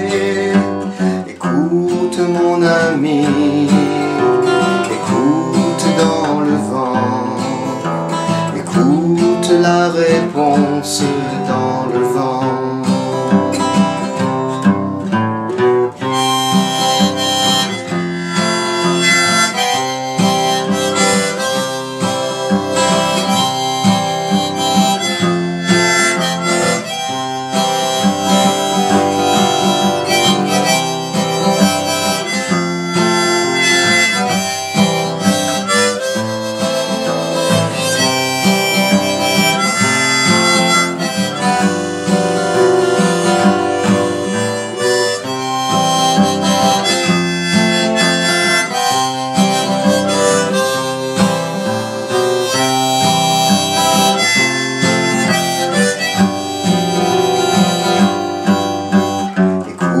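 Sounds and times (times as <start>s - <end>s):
harmonica melody: 0.0s - 60.0s
strummed acoustic guitar: 0.0s - 60.0s.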